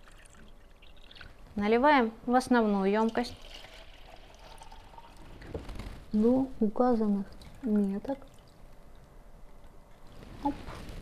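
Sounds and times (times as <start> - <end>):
water pouring into plastic tank: 0.0 - 1.4, 3.0 - 5.6.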